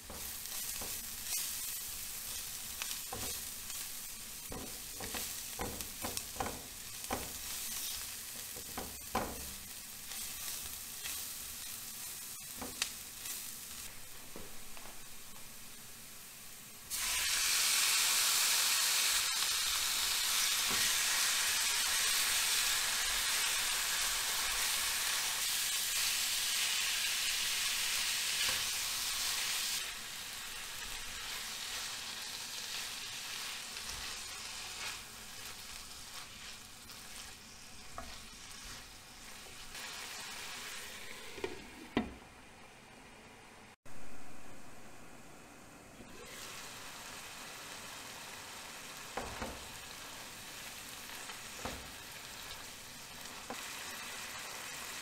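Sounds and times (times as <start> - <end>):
spatula stirring in a pan: 0.0 - 13.9, 27.4 - 41.6
meat sizzling in a pan: 0.0 - 41.6, 46.1 - 55.0.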